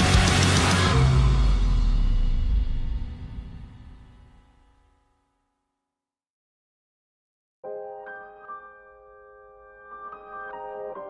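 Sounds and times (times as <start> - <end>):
background music: 0.0 - 5.2, 7.6 - 11.0.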